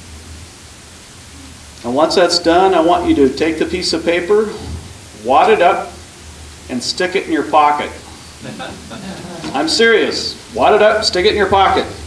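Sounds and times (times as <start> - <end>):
low hum with hiss: 0.0 - 12.0
man's amplified voice: 1.8 - 6.1, 6.7 - 12.0.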